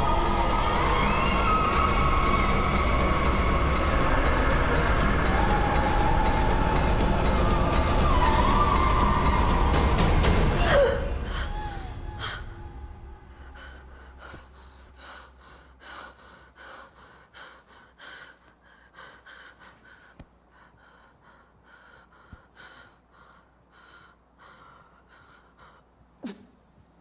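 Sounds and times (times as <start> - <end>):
woman breathing fast and gasping: 13.3 - 26.6.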